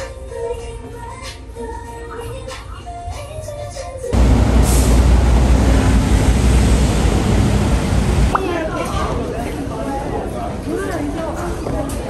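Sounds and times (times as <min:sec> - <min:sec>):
vehicle engines rumbling: 0:04.2 - 0:10.8.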